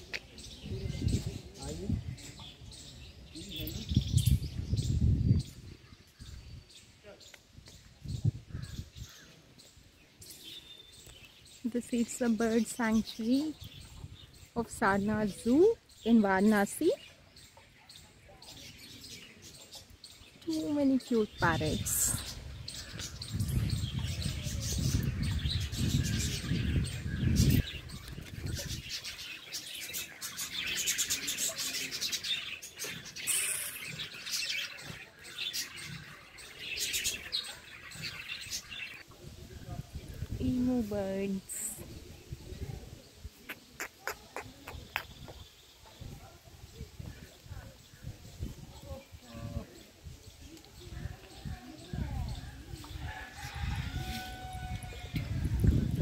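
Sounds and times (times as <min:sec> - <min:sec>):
parrots chirping and chattering: 0:10.2 - 0:39.1, 0:43.2 - 0:46.1
bird calling: 0:43.4 - 0:45.4.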